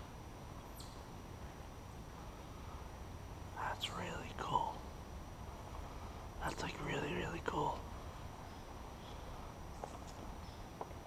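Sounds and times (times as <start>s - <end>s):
low steady rumble: 0.0s - 11.0s
person speaking softly: 3.5s - 4.9s, 6.4s - 7.9s.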